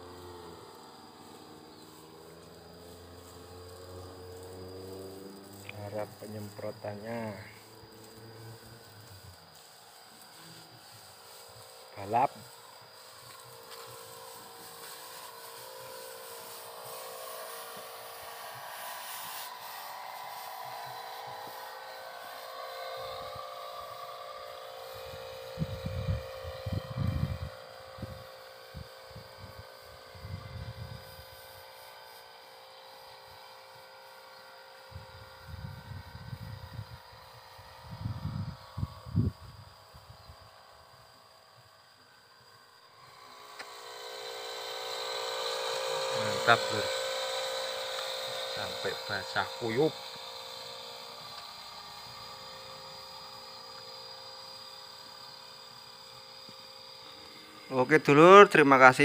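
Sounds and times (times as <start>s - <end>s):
power sprayer engine humming: 0.0s - 59.0s.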